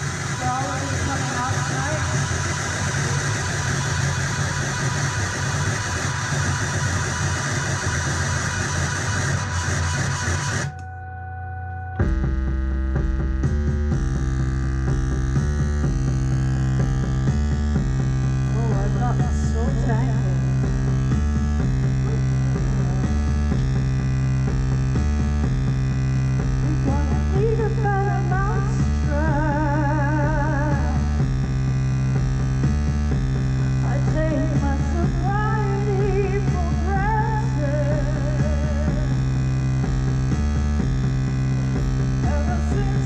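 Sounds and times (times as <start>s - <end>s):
dense wall of noise: 0.0s - 10.8s
heavy low droning hum: 0.0s - 43.0s.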